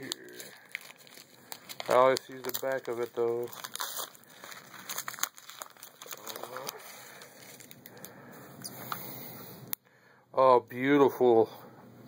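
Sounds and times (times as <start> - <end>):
plastic packaging crinkling: 0.0 - 9.0.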